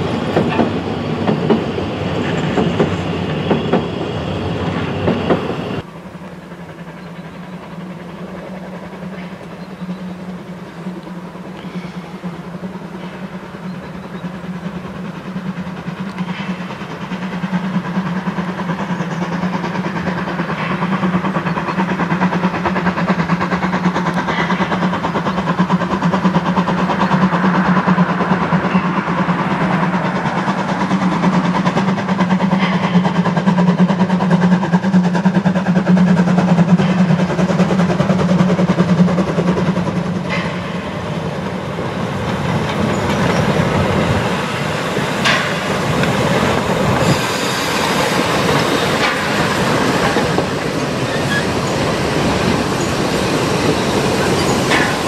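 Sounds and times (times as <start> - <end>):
train wheels rumbling on rails: 0.0 - 55.0
clicking over rail joints: 0.1 - 3.9, 10.9 - 34.4, 35.2 - 55.0.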